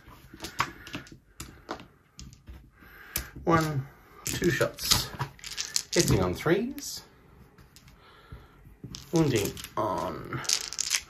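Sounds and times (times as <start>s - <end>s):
plastic dice clicking: 3.1s - 6.3s, 8.9s - 11.0s.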